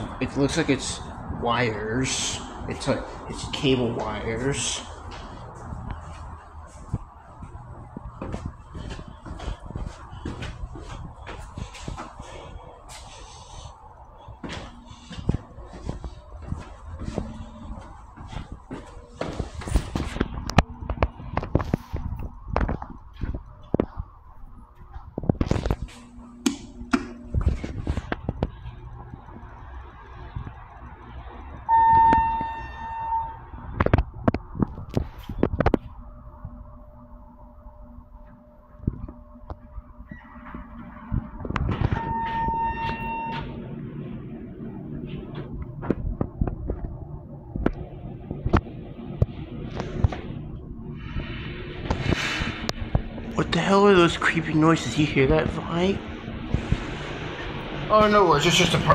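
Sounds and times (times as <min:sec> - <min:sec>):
steady electronic tones: 0:00.0 - 0:34.6, 0:35.2 - 0:58.9
low steady hum: 0:00.0 - 0:58.9.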